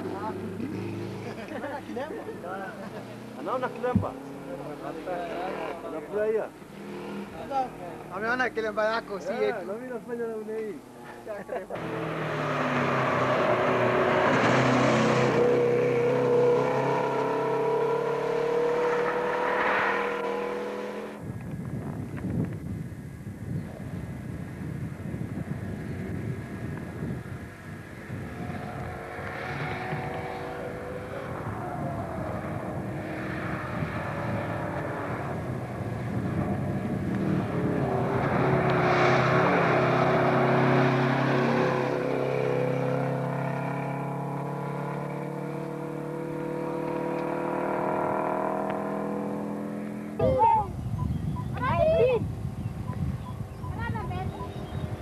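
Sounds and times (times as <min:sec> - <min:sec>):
rally car passing at speed: 0:00.0 - 0:10.0, 0:10.8 - 0:21.2, 0:25.8 - 0:50.2
person shouting: 0:50.2 - 0:50.7.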